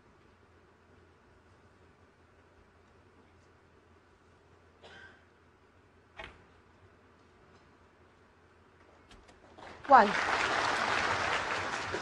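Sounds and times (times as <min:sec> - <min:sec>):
audience applauding: 0:09.6 - 0:12.0.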